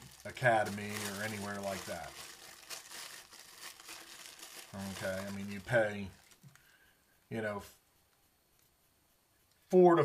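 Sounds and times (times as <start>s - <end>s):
plastic bag crinkling: 0.0s - 6.6s.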